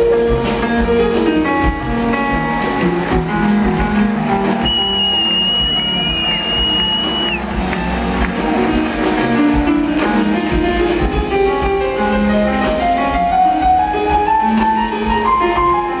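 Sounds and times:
jazz band playing: 0.0s - 16.0s.

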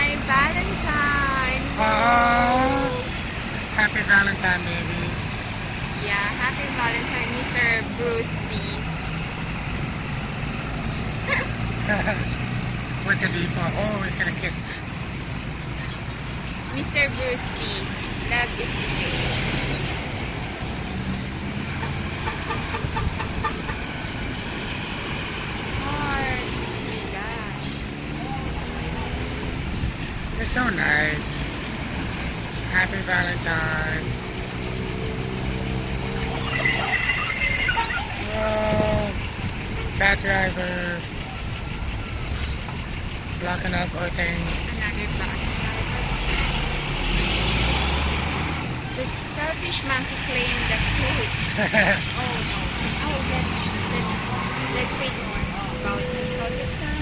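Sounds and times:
bus engine humming: 0.0s - 57.0s
road traffic rumble: 0.0s - 57.0s
short high-pitched tone: 36.0s - 38.2s.

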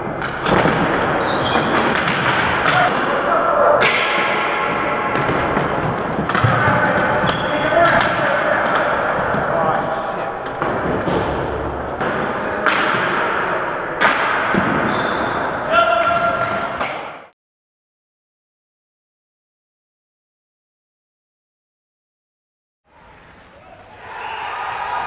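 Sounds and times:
players shouting: 23.5s - 25.0s.

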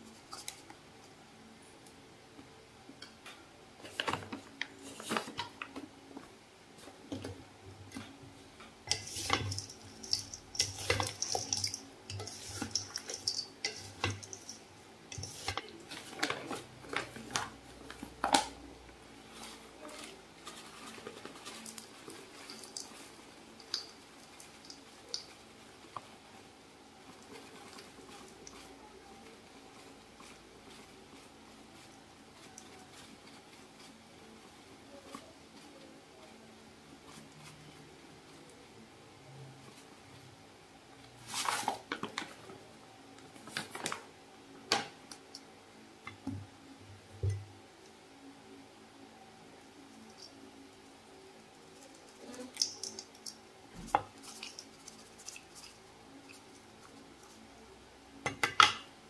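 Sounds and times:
wooden spoons scraping metal bowl: 8.8s - 17.4s.

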